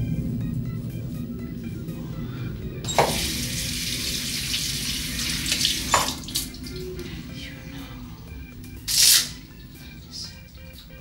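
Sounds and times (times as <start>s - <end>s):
sink tap running: 2.9s - 6.8s, 8.9s - 9.3s.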